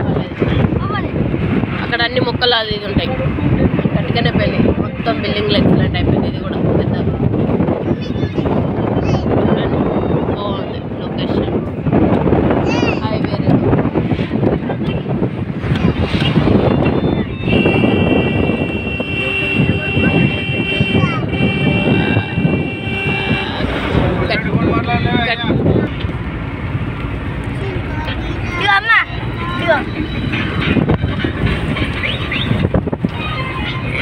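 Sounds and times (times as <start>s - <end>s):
road and wind noise in car: 0.0s - 34.0s
voices: 0.0s - 34.0s.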